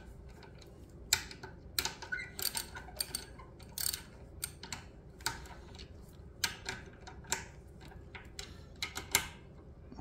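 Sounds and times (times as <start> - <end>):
ratchet wrench clicking: 1.1 - 5.5.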